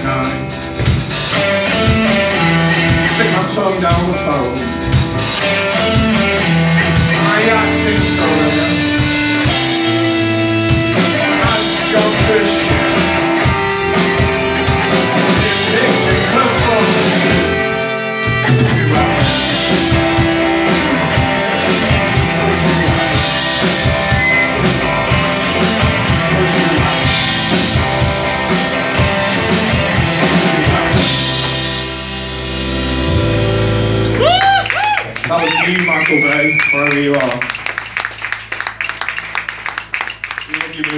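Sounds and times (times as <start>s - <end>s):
rock band playing: 0.0s - 40.9s
guitar chords ringing: 1.4s - 34.2s.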